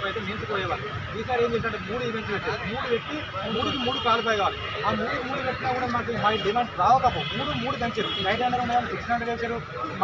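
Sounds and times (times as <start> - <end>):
man talking into a microphone: 0.0 - 10.0.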